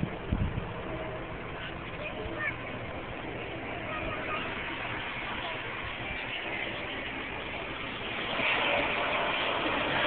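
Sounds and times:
jet airliner engine rush: 0.0s - 10.0s.

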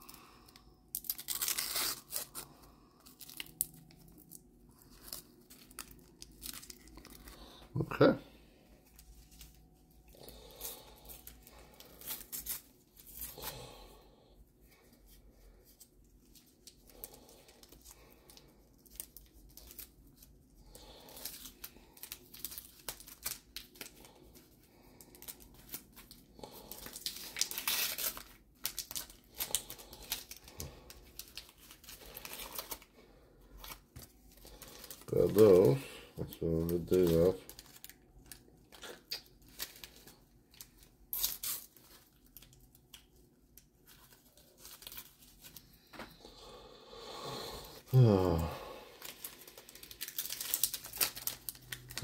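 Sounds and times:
paper packets tearing: 0.9s - 7.6s, 10.2s - 13.9s, 16.4s - 32.9s, 33.5s - 42.9s, 48.0s - 52.0s
crinkling rustles: 0.9s - 7.8s, 8.6s - 13.6s, 14.6s - 46.2s, 48.3s - 52.0s.

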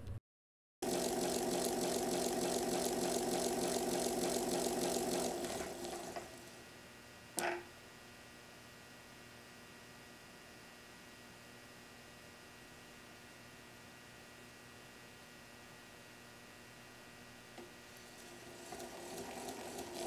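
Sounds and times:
gears whirring and rattling: 0.8s - 6.6s, 18.0s - 20.0s.

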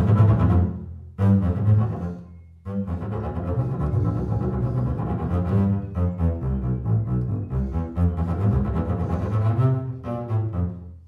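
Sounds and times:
bowed double bass: 0.0s - 11.0s.

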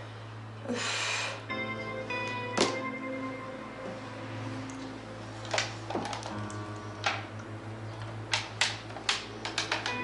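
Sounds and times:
soft background music: 0.0s - 10.0s
telephone buttons clicking: 8.3s - 10.0s.

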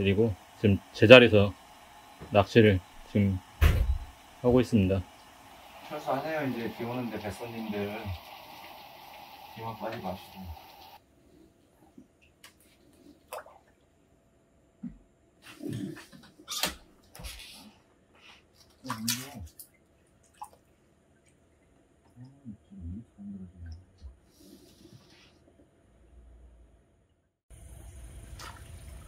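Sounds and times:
water sounds: 0.0s - 11.0s, 27.6s - 29.0s.

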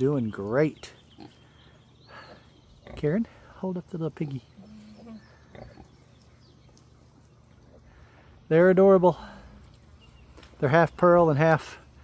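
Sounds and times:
soft pig sound: 4.1s - 6.3s.

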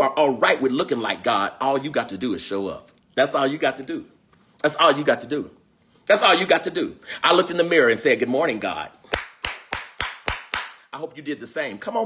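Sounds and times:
man clapping hands: 9.1s - 10.8s.

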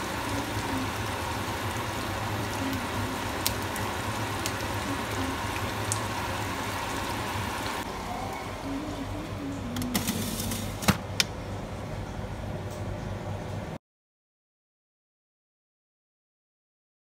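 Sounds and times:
sausages sizzling in a frying pan: 0.0s - 7.9s.

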